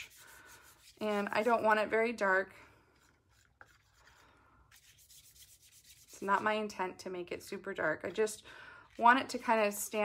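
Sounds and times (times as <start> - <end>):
wet brush scrubbing: 0.0 - 1.8, 3.0 - 6.4.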